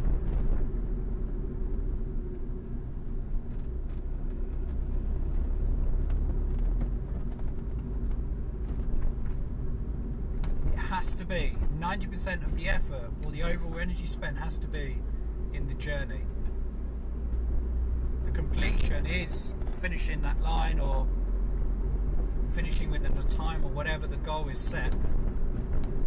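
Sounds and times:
vehicle rumbling: 0.0s - 26.0s
man speaking: 10.8s - 15.0s, 15.6s - 16.3s, 18.3s - 21.1s, 22.5s - 25.0s.

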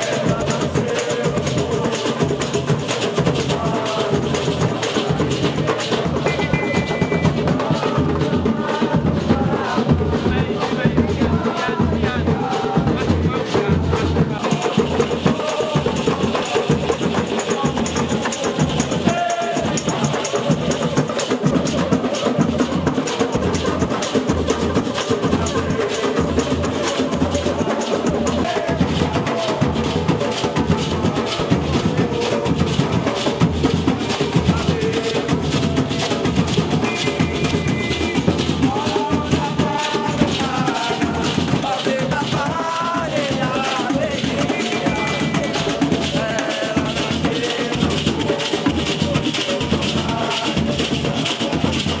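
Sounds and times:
tambourines: 0.0s - 11.8s, 12.5s - 52.0s
hand drums: 0.0s - 52.0s
snare drums: 0.0s - 52.0s.

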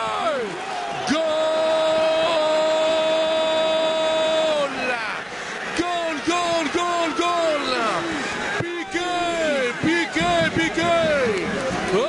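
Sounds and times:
man shouting goal: 0.0s - 5.0s, 5.7s - 11.4s
crowd noise: 0.0s - 12.0s.

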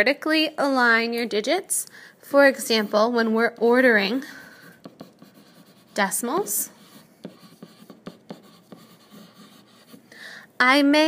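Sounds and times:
pen scratching on paper: 4.6s - 10.0s.

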